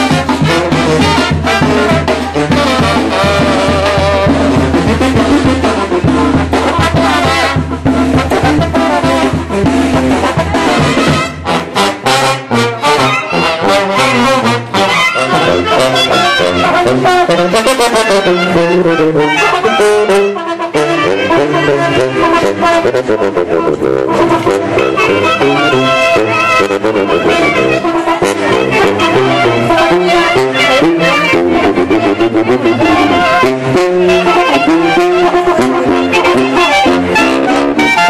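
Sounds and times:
brass band playing: 0:00.0 - 0:38.0.

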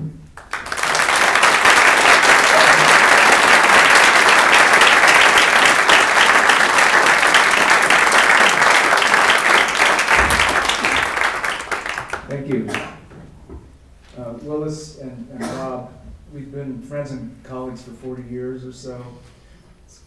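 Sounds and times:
audience applauding: 0:00.4 - 0:13.1.

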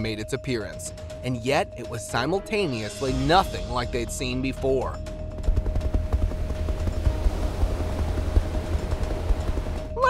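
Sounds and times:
helicopter low rumble: 0:05.0 - 0:10.0.

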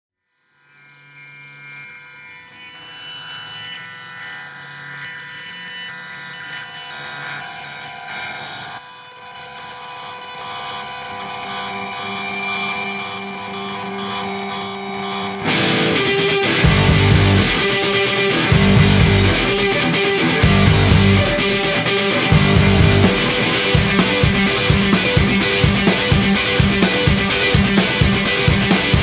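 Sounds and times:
distorted guitar sustained notes: 0:00.6 - 0:29.0
rock band playing loudly: 0:15.4 - 0:29.0.

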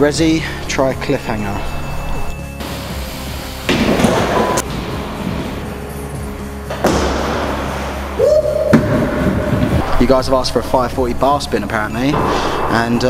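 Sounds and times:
background music: 0:00.0 - 0:13.0
heavy thuds: 0:03.7 - 0:08.1, 0:08.7 - 0:13.0.

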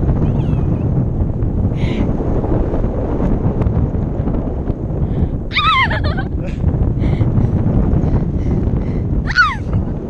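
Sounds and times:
wind rushing over microphone: 0:00.0 - 0:10.0
person squealing: 0:05.5 - 0:06.2.

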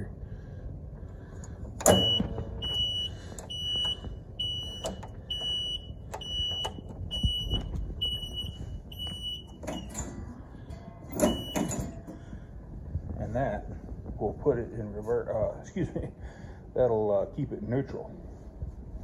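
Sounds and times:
loud metal click: 0:01.8 - 0:02.3
high electronic reverse beeper: 0:01.9 - 0:09.9.

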